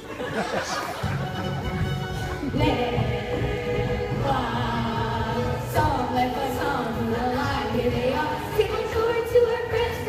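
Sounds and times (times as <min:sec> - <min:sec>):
musical accompaniment: 0:00.0 - 0:10.0
chorus of young singers: 0:02.4 - 0:10.0.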